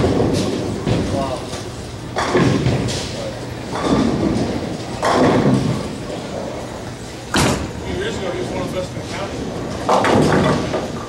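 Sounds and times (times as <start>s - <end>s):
bowling balls crashing into pins: 0.0s - 1.5s, 2.1s - 6.7s, 9.3s - 11.0s.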